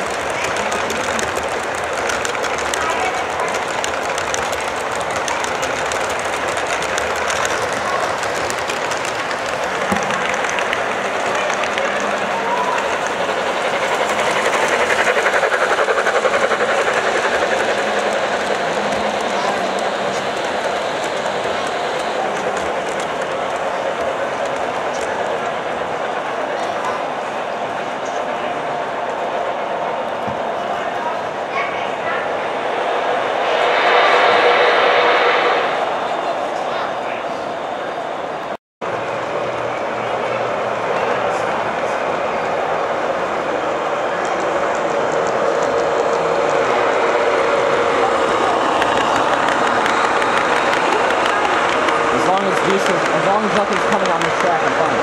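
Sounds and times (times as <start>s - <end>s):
model train wheels rumbling on rail: 0.0s - 55.0s.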